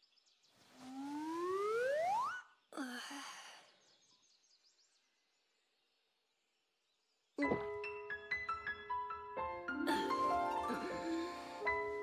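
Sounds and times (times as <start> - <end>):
faint bird chirps: 0.0 - 7.6
girl sighing: 2.8 - 3.6, 9.9 - 11.7.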